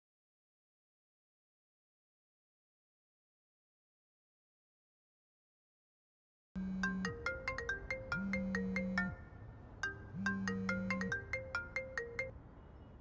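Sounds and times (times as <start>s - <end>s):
phone vibration buzz: 6.6s - 7.5s, 8.1s - 9.3s, 10.1s - 11.3s
phone ringtone melody: 6.6s - 12.4s.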